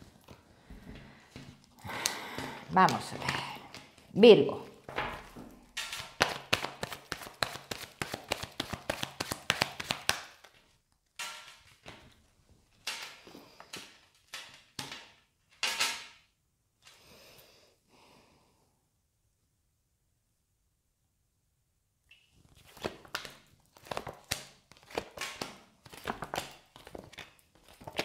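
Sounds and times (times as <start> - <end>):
cards swishing and slapping on table: 4.8 - 10.6, 22.4 - 28.0
cards shuffled by hand: 4.9 - 10.8, 22.4 - 28.0.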